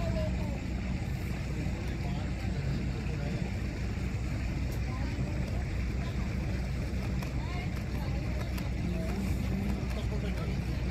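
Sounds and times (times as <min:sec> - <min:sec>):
boat engine droning: 0:00.0 - 0:10.9.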